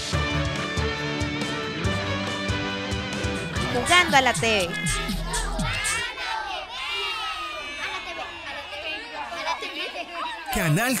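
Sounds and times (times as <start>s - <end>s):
children shouting and cheering: 3.6s - 11.0s.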